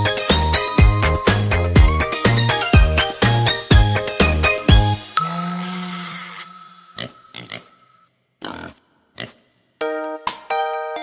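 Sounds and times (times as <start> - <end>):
cha-cha children's tune: 0.0 - 5.6, 9.8 - 11.0
upbeat tune: 0.0 - 5.8
pig oinks and grunts: 7.0 - 7.8, 8.4 - 9.4.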